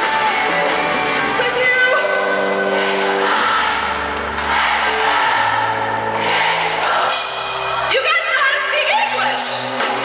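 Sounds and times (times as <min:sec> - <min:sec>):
live pop-rock band music: 0:00.0 - 0:10.0.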